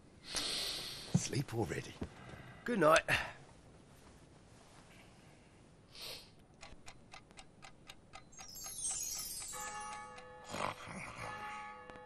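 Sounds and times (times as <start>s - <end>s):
clock ticking quickly: 6.5s - 10.3s
cascade of chime-like notes: 8.5s - 12.0s
held musical chord: 9.2s - 12.0s.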